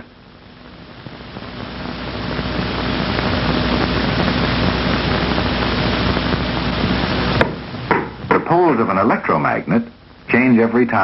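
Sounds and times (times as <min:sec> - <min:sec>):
faint low hum: 0:00.0 - 0:11.0
steady hiss: 0:00.0 - 0:11.0.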